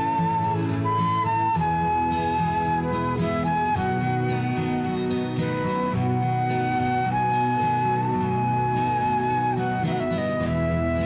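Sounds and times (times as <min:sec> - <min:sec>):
flute playing slow melody: 0:00.0 - 0:11.0
keyboard: 0:00.0 - 0:11.0
strummed acoustic guitars: 0:00.0 - 0:11.0.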